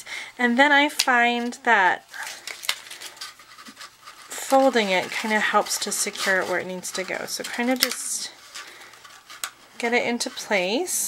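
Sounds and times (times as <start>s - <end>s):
cardstock rustling and scraping: 2.1s - 10.9s.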